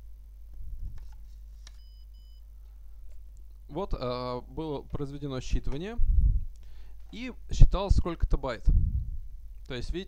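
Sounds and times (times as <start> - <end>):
low hum: 0.0 - 8.0, 8.6 - 9.9
short high beeps: 1.8 - 2.4.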